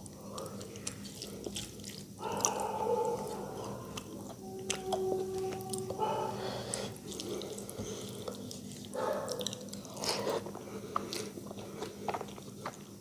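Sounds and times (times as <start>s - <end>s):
fingers squelching rice and gravy: 0.0s - 13.0s.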